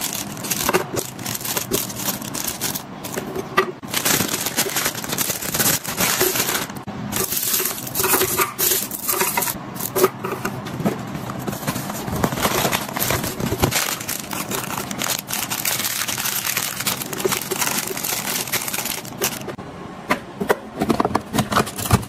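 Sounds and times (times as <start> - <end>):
plastic wrappers crinkling: 0.0 - 10.0, 11.4 - 19.6.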